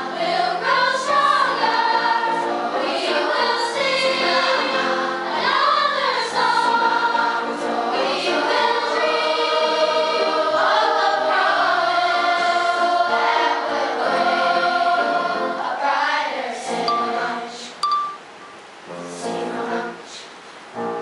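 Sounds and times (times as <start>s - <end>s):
children's choir singing: 0.0s - 18.2s, 18.9s - 20.3s.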